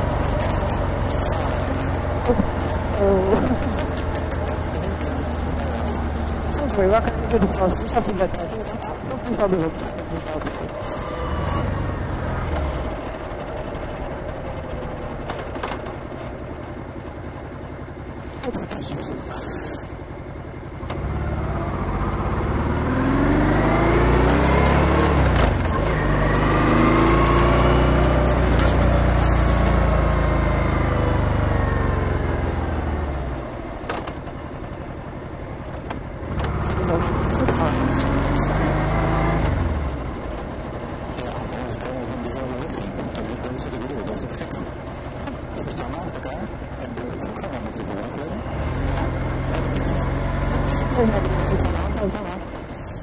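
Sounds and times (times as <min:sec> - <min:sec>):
motorcycle engine running: 0:00.0 - 0:53.0.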